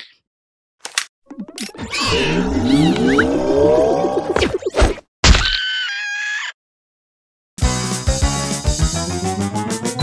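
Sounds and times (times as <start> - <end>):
cartoon characters screaming: 5.4 - 6.6
background music: 7.6 - 10.0.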